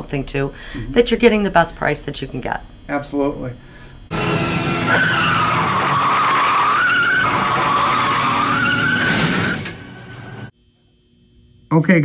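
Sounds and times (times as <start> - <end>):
car tyres squealing: 4.1 - 10.5.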